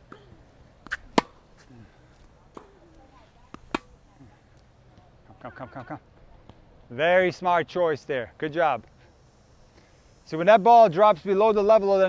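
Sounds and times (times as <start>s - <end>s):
racket hitting tennis ball: 0.1s - 1.7s, 2.5s - 4.0s
tennis ball bouncing: 0.1s - 1.7s, 2.5s - 4.0s.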